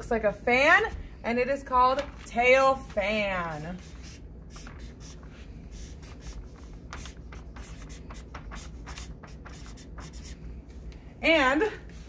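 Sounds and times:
marker scratching on paper: 0:03.5 - 0:10.4.

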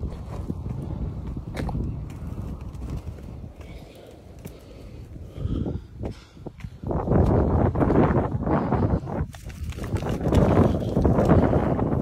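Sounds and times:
footsteps on ash-covered ground: 0:00.0 - 0:05.2
low microphone rumble: 0:00.0 - 0:12.0.

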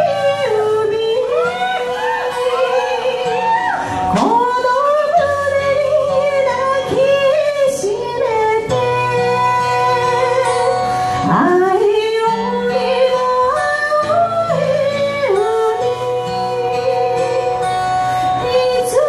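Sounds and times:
woman singing long notes: 0:00.0 - 0:17.7
acoustic guitar accompaniment: 0:00.0 - 0:19.0.

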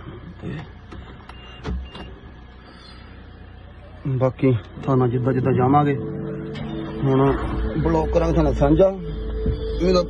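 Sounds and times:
car engine turning over: 0:00.0 - 0:10.0
steady low hum: 0:00.0 - 0:10.0.

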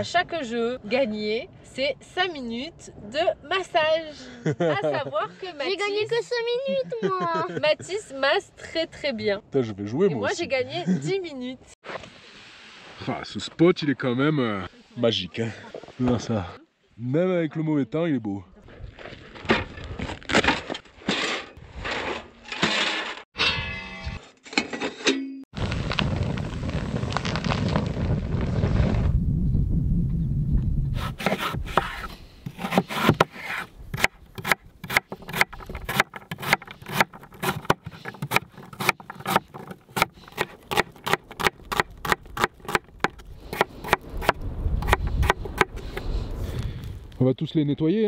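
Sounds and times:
rustling: 0:25.6 - 0:29.2
knife chopping on wooden board: 0:31.0 - 0:45.8.

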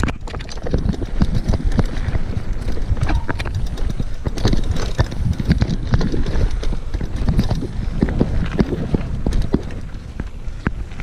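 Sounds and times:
bike rattling and knocking: 0:00.0 - 0:11.0
bike tyres on gravel: 0:00.0 - 0:11.0
steady low rumble: 0:00.0 - 0:11.0.

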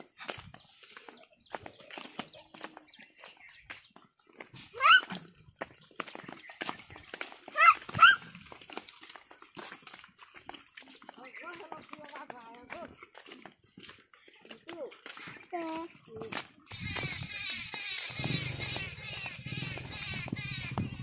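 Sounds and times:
hooves and feet squelching in mud: 0:00.0 - 0:21.0.

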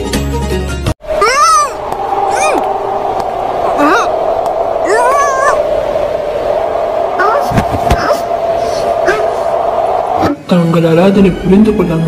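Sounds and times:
steady hum: 0:01.0 - 0:12.0.

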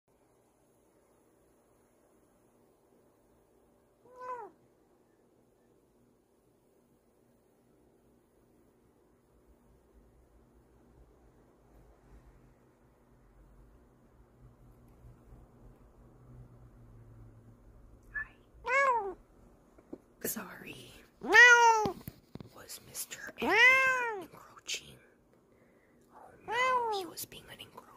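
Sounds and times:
cat chirping: 0:04.0 - 0:04.6, 0:18.2 - 0:19.2, 0:21.2 - 0:22.0, 0:23.3 - 0:24.3, 0:26.4 - 0:27.1
cat meowing: 0:04.0 - 0:04.6, 0:18.6 - 0:19.2, 0:21.2 - 0:22.0, 0:23.4 - 0:24.3, 0:26.4 - 0:27.1.

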